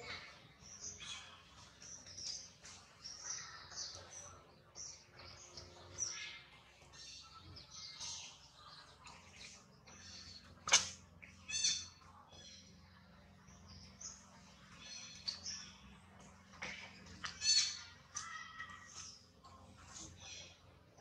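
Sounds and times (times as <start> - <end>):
small animals chirping and squeaking: 0.0 - 21.0.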